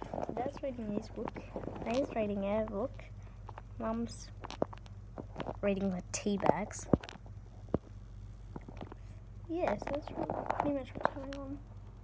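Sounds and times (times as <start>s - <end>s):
air conditioner hum: 0.0s - 12.0s.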